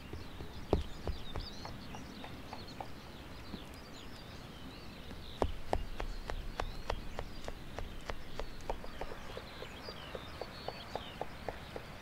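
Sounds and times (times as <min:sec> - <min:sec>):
faint birds chirping: 0:00.0 - 0:12.0.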